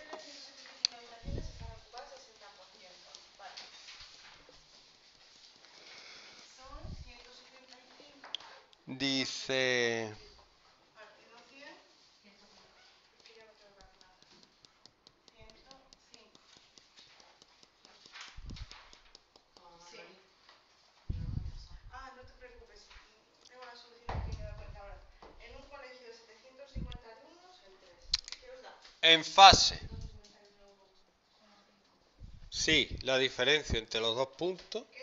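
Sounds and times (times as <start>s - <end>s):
faint clicking and tapping: 0.0s - 8.8s, 12.5s - 26.0s
marker writing on a whiteboard: 12.6s - 20.0s.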